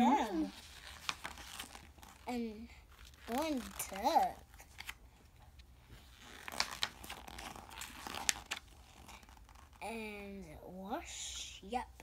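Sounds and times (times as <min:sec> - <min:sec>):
paper pages rustling: 0:00.0 - 0:09.8.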